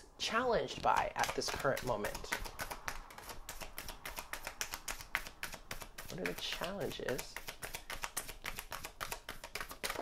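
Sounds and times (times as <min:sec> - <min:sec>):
cards being shuffled: 0:00.7 - 0:10.0.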